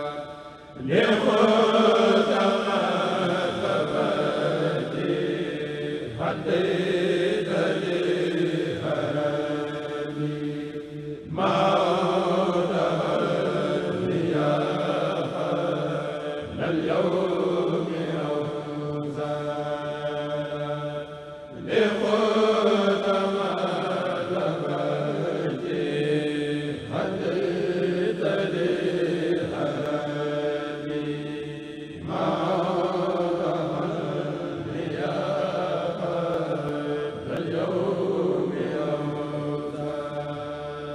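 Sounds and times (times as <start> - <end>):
men chanting together: 0.0 - 40.9.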